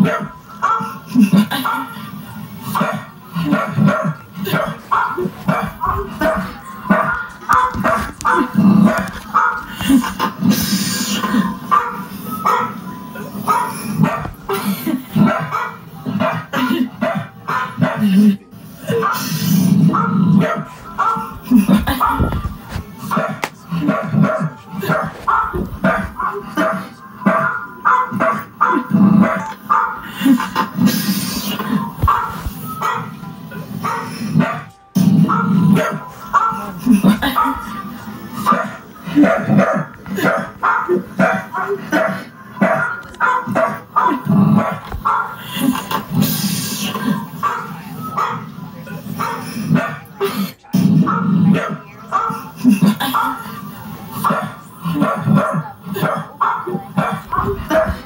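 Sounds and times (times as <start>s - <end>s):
dog barking: 0.0s - 2.0s, 2.7s - 10.1s, 11.2s - 12.8s, 13.4s - 14.4s, 15.2s - 18.3s, 18.9s - 30.3s, 32.0s - 33.2s, 33.8s - 37.8s, 38.4s - 45.7s, 47.3s - 48.5s, 49.1s - 50.1s, 51.0s - 53.6s, 54.2s - 58.0s
music: 0.0s - 49.8s.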